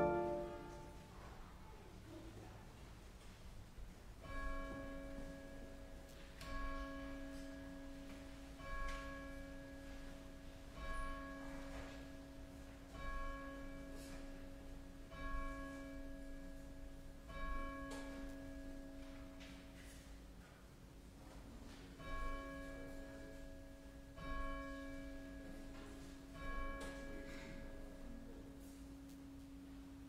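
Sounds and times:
church bell tolling: 0.0s - 1.1s, 4.2s - 19.8s, 22.0s - 28.9s.

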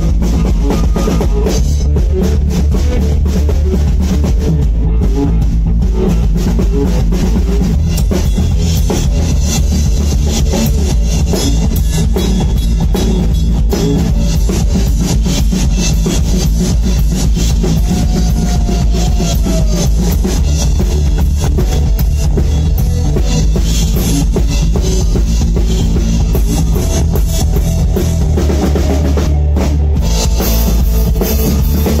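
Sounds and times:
bass drum: 0.0s - 32.0s
blues band playing: 0.0s - 32.0s
electric bass guitar: 0.0s - 32.0s.

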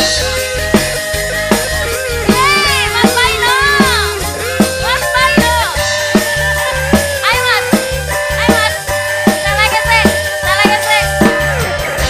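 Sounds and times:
electric guitar: 0.0s - 12.0s
hand drums steady beat: 0.0s - 12.0s
keyboard: 0.0s - 12.0s.

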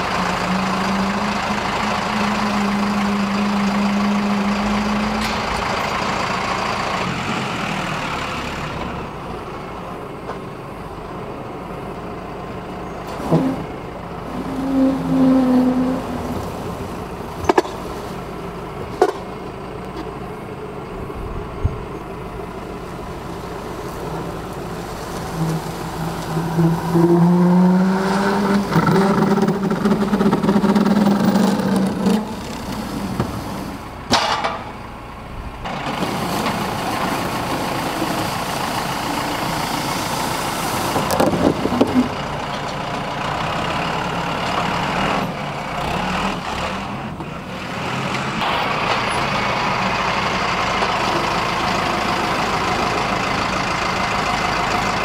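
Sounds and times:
tractor engine revving: 0.0s - 55.0s
sharp knocks and clunks: 19.0s - 19.3s, 34.1s - 34.8s
boiler dragging on concrete: 22.9s - 33.8s.

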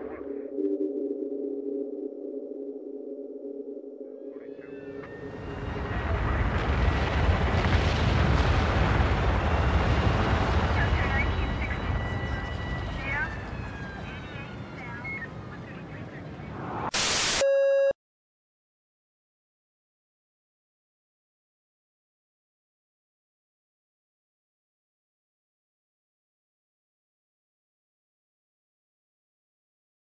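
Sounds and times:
steady electronic tone: 0.0s - 5.1s
faint high whistling tones: 11.6s - 15.4s
loud burst of harsh noise: 16.6s - 17.5s.

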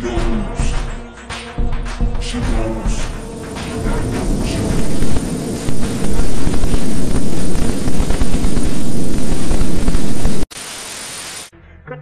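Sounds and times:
heavy low rumble: 2.4s - 10.5s
distorted static glitch noise: 2.9s - 11.5s.

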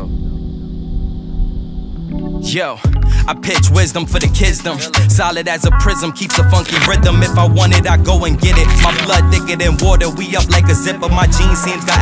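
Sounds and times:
low rumbling bass: 0.0s - 11.6s
held music chord: 0.0s - 12.0s.

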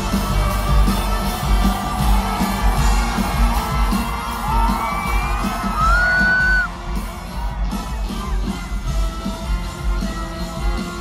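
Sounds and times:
crowd yelling and whooping: 0.0s - 8.8s
live band playing loudly: 0.0s - 11.0s.

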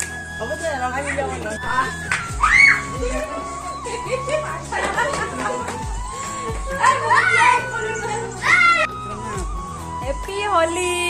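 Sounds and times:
background music: 0.0s - 11.0s
children's voices at play: 1.6s - 3.3s, 6.3s - 8.9s.

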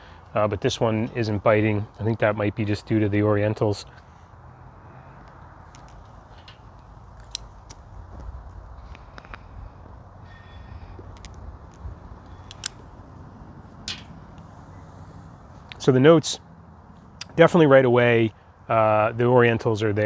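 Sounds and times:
faint low rumble: 0.0s - 16.0s.

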